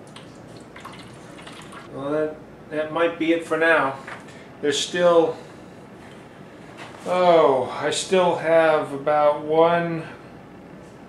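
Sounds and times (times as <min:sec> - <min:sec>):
liquid trickling and splashing: 0:00.0 - 0:01.9.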